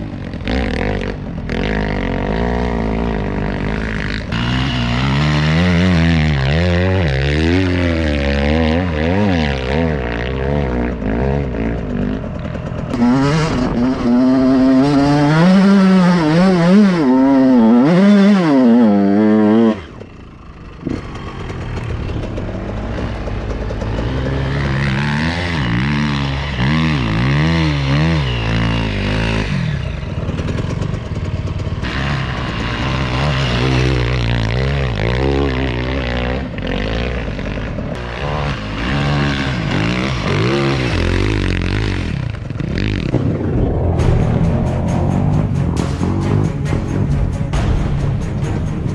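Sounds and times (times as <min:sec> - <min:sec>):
motocross bike engine revving: 0:00.0 - 0:48.9.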